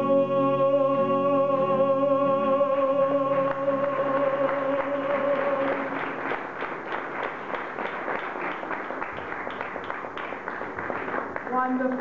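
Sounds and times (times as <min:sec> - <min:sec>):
audience applauding: 0:03.3 - 0:12.0.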